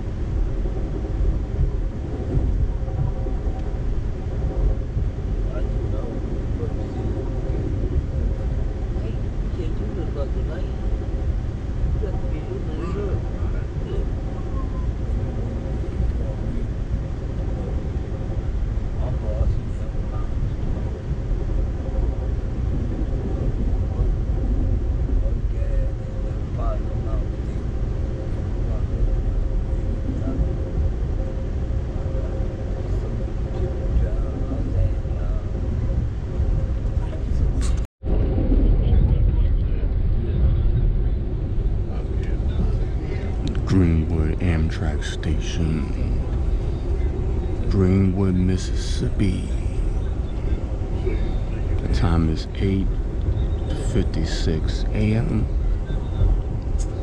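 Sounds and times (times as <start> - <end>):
faint steady hum: 0.0 - 57.0
train rumbling at speed: 0.0 - 57.0.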